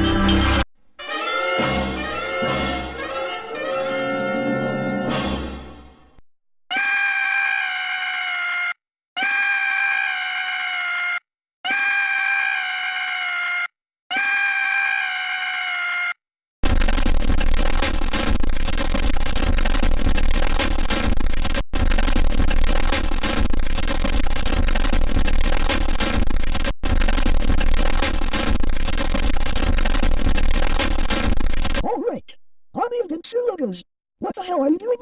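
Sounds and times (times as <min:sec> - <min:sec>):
cartoon scream: 0:06.7 - 0:16.2.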